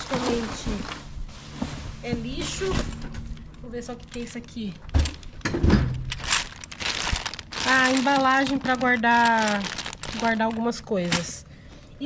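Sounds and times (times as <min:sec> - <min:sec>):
plastic bag crinkling: 0:00.0 - 0:01.3, 0:03.3 - 0:11.4
plastic containers shifting: 0:00.0 - 0:11.4.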